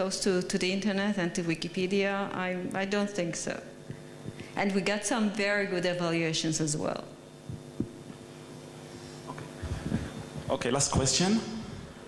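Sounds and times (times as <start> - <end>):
sound system electrical hum: 0.0 - 12.0
handheld microphone thumps: 7.4 - 8.6, 9.3 - 10.6.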